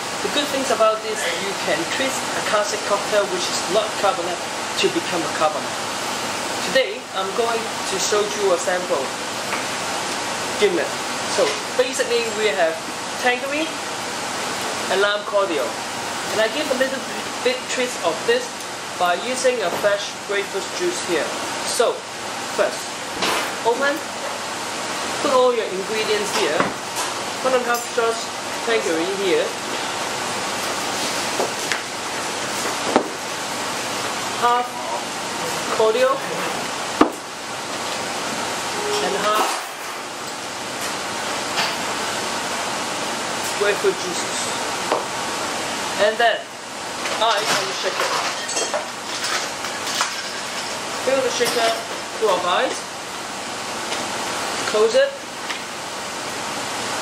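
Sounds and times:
room noise hiss: 0.0s - 57.0s.

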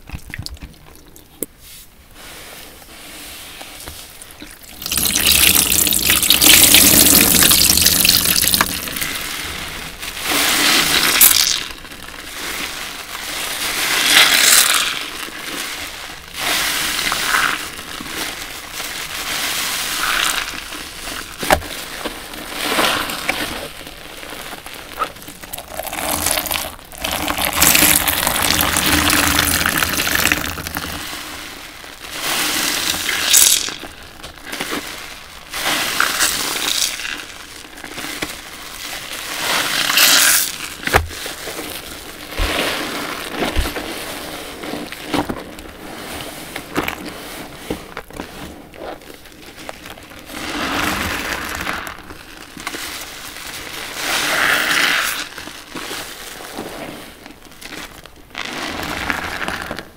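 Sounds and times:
wet sponges squelching: 0.0s - 59.8s
water splashing in a basin: 4.4s - 9.0s.

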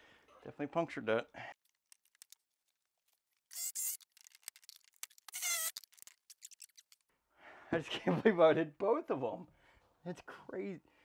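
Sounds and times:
squealing scrapes: 3.5s - 4.3s, 4.9s - 7.0s.

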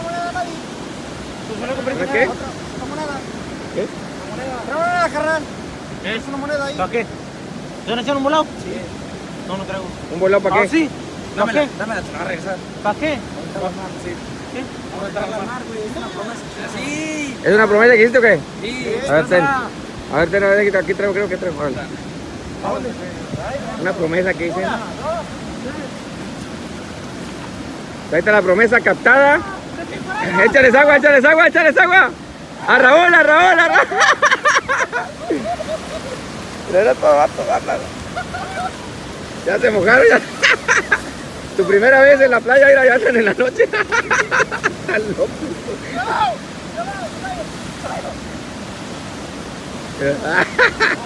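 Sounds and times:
ocean waves breaking on beach: 0.0s - 51.0s
distant calls: 28.9s - 51.0s.

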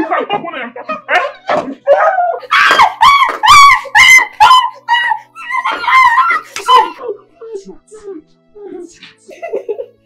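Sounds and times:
woman screaming: 1.9s - 7.2s.

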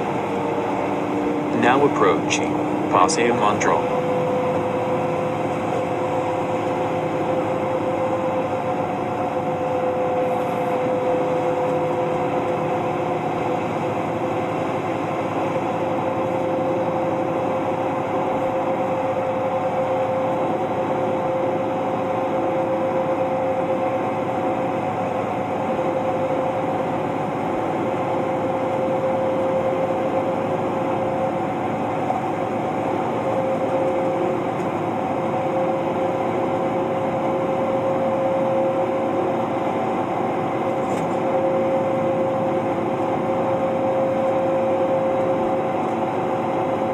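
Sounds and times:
bus engine and road noise: 0.0s - 46.9s
constant whining hum: 0.0s - 46.9s.

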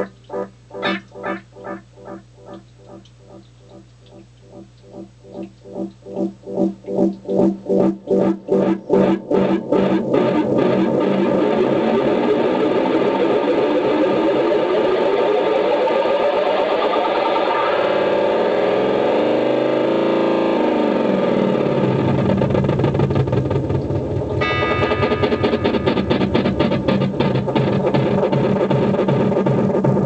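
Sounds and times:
guitar delay pedal feedback: 0.0s - 22.0s, 24.3s - 29.3s.

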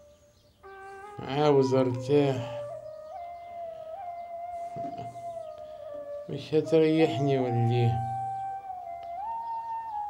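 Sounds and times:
held high music note: 0.7s - 9.3s.

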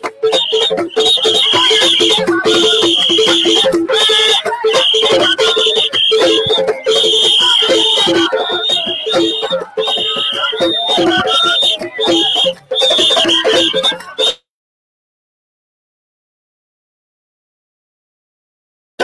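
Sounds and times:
music: 0.0s - 14.4s
whistle blasts: 0.0s - 14.4s.

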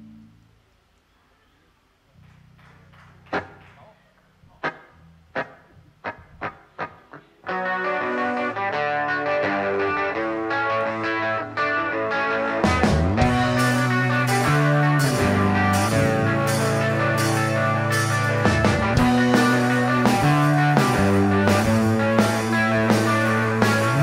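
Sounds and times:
live rock band playing: 4.6s - 24.0s.

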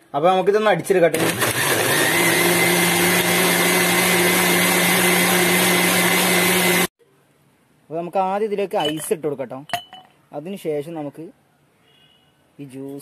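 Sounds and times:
electric blender running: 1.2s - 6.9s.

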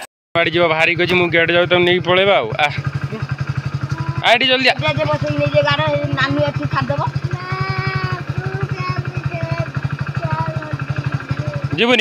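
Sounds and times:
motorcycle engine idling: 0.4s - 12.0s.

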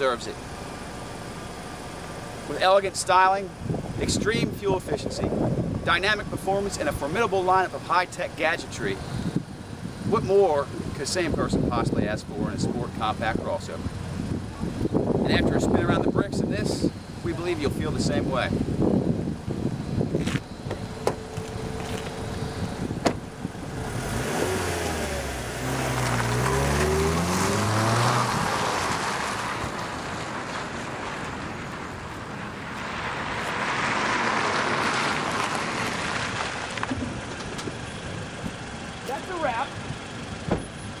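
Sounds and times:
car engine accelerating: 17.1s - 41.0s
car door shutting: 20.2s - 23.3s, 40.4s - 40.8s
car driving past: 23.7s - 31.4s.

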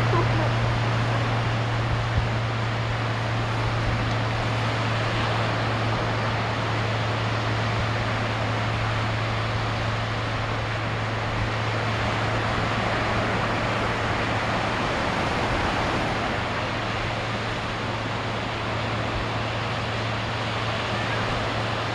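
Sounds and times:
constant low hum: 0.0s - 21.9s
ocean surf: 0.0s - 21.9s
wind: 0.0s - 21.9s.

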